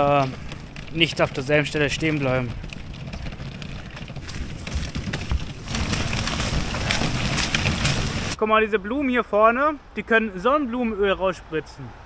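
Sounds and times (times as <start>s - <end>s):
trolley wheels rattling on pavement: 0.0s - 8.4s.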